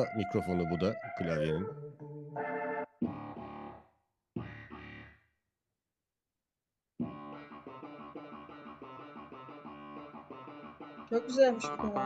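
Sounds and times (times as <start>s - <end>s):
clavinet stabs: 2.4s - 5.2s, 7.0s - 12.0s.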